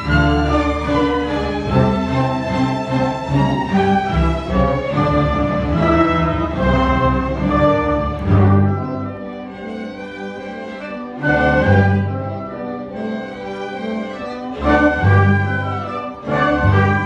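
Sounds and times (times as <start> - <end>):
loud orchestral chord: 0.0 - 17.0
orchestra playing classical music: 0.0 - 17.0.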